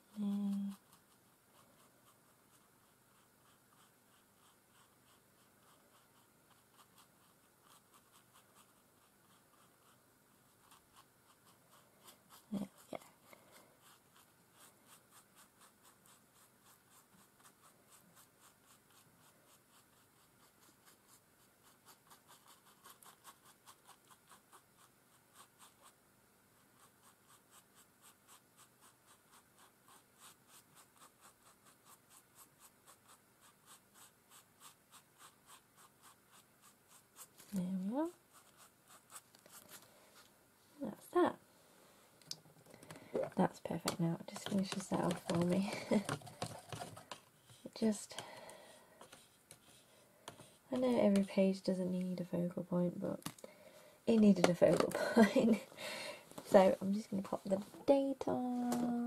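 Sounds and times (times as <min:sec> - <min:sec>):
paintbrush brushing on paper: 0:00.0 - 0:41.0, 0:43.2 - 0:52.8.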